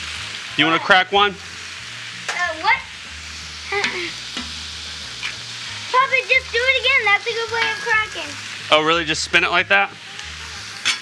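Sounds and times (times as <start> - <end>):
food sizzling on griddle: 0.0 - 11.0.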